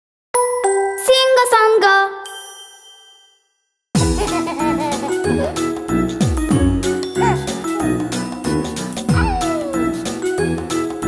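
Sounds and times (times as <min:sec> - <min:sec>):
high sparkling ding: 0:02.2 - 0:03.8
bright chime-like jingle: 0:02.2 - 0:04.6.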